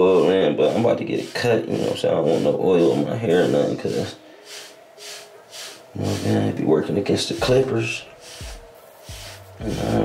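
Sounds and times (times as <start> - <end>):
hair brush swishing through hair: 0.0 - 10.0.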